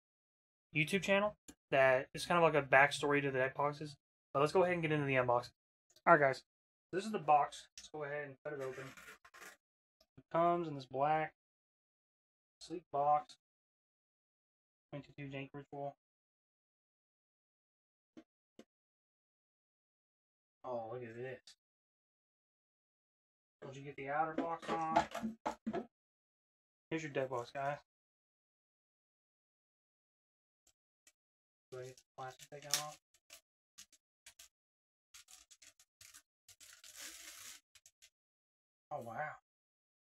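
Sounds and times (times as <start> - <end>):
plastic bag crinkling: 35.2 - 37.6.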